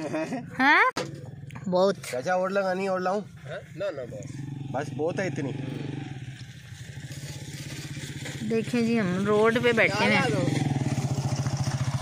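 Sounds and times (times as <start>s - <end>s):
engine chugging: 1.0s - 12.0s.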